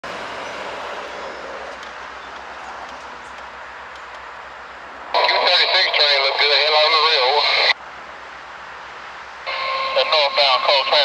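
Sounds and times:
scanner radio voice: 0:05.2 - 0:07.8, 0:09.5 - 0:11.0.

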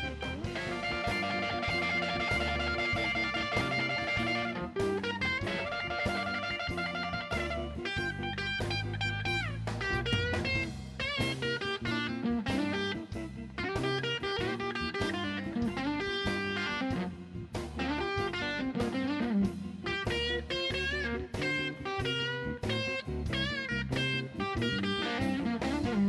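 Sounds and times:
bass guitar: 0:00.0 - 0:26.0
drum kit: 0:00.0 - 0:26.0
electric guitar solo: 0:00.0 - 0:26.0.

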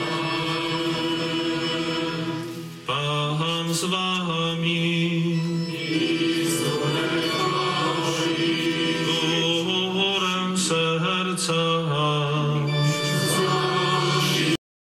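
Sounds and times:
male liturgical chant: 0:00.0 - 0:14.6.

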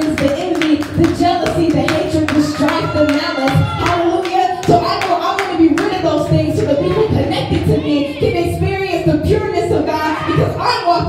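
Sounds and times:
rhythmic hand clapping: 0:00.0 - 0:06.9.

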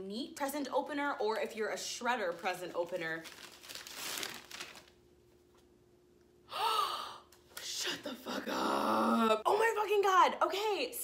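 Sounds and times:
wrapping paper tearing: 0:02.2 - 0:05.0
person gasping: 0:06.5 - 0:07.3.

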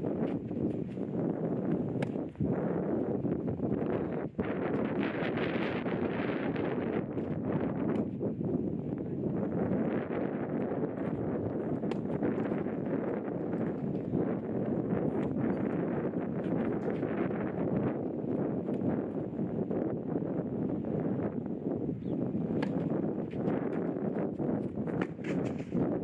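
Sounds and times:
wind buffeting microphone: 0:00.0 - 0:26.0
tennis balls struck and bouncing: 0:00.2 - 0:02.3, 0:07.2 - 0:08.1, 0:10.6 - 0:15.4, 0:22.4 - 0:25.8.

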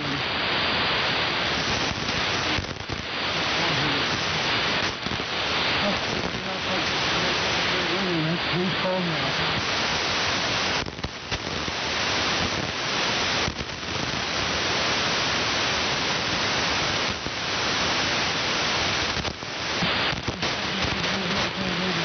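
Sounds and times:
shortwave radio static: 0:00.0 - 0:22.0.

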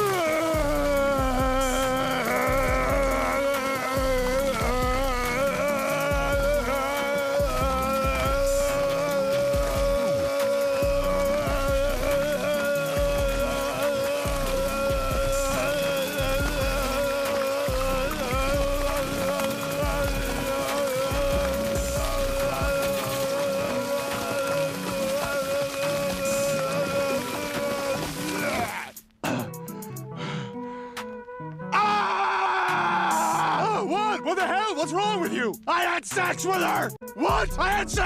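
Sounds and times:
wet splashing: 0:00.0 - 0:29.1.

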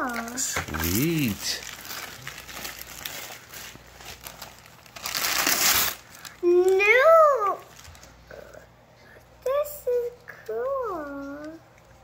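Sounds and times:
wrapping paper crinkling: 0:00.0 - 0:08.2
wrapping paper tearing: 0:00.0 - 0:08.2.

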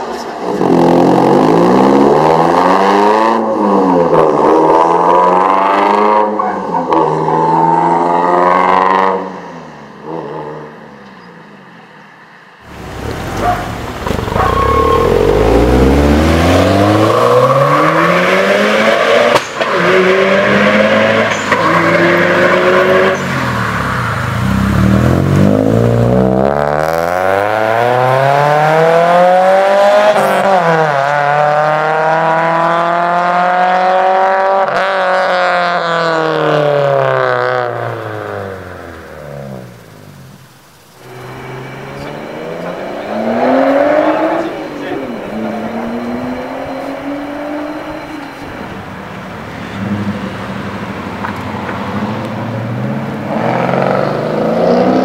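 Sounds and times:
car engine revving: 0:12.6 - 0:55.0.

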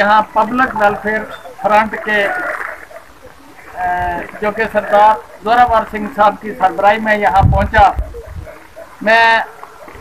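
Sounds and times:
man speaking: 0:00.0 - 0:09.6.

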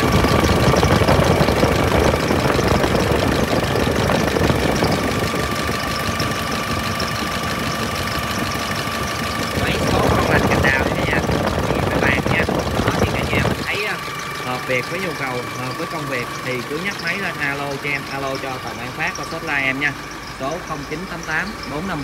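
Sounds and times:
diesel engine idling: 0:00.0 - 0:22.0
thin steady whine: 0:00.0 - 0:22.0.

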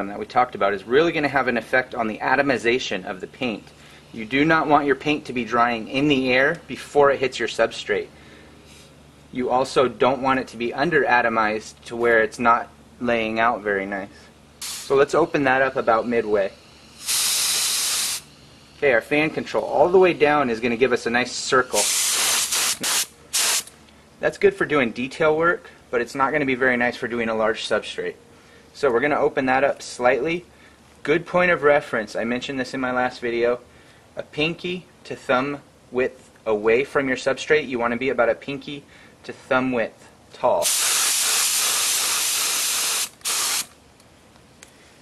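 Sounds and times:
spray gun spurts: 0:14.6 - 0:15.0, 0:16.8 - 0:18.4, 0:21.7 - 0:23.8, 0:40.6 - 0:43.8.

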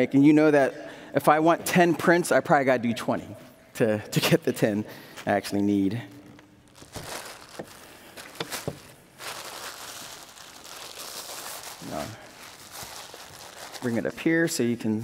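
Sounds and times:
paper rustling: 0:06.2 - 0:14.5.

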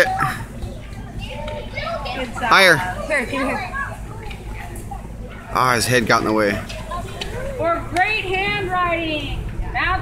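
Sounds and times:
young children chattering: 0:00.0 - 0:10.0.

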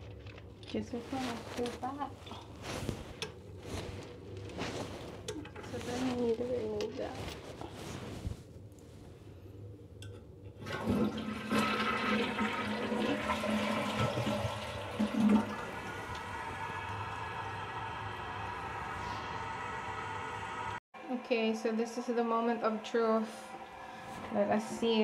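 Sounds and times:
water rushing in a toilet: 0:10.5 - 0:20.8.

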